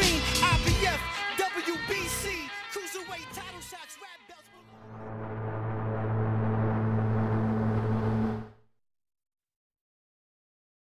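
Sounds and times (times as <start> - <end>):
low synthetic drone: 4.7 - 8.7.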